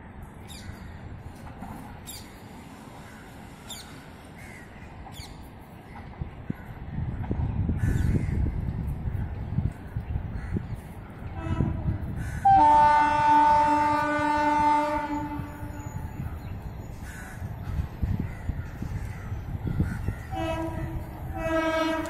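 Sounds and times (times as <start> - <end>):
train horn blasts: 11.3 - 16.2, 20.3 - 22.0.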